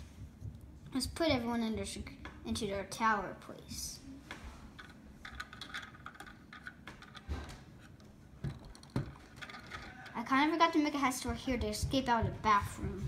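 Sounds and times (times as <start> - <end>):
plastic pieces clicking and knocking: 4.8 - 7.3, 8.4 - 10.2.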